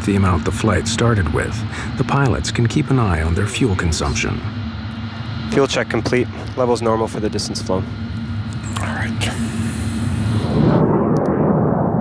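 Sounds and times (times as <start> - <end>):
jet engines rumbling: 0.0 - 12.0.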